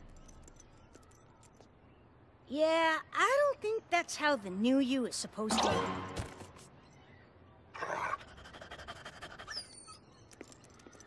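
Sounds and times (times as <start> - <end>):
cartoon dog panting: 8.2 - 9.8.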